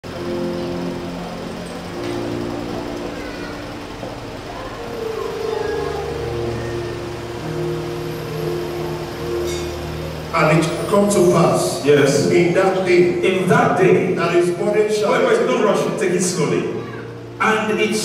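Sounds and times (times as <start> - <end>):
soft keyboard chords: 0.0 - 18.0.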